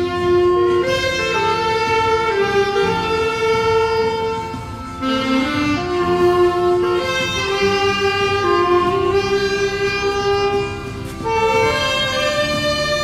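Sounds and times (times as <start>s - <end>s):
saxophone playing slow melody: 0.0s - 13.0s.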